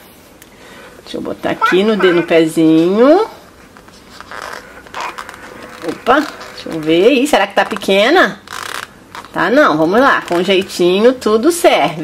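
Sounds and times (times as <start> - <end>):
soft rustling and scraping: 2.6 - 12.0.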